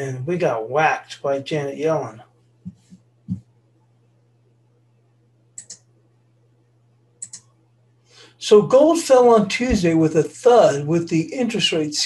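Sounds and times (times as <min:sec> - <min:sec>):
faint low hum: 0:00.0 - 0:12.0
computer mouse clicks: 0:05.6 - 0:05.9, 0:07.2 - 0:07.5.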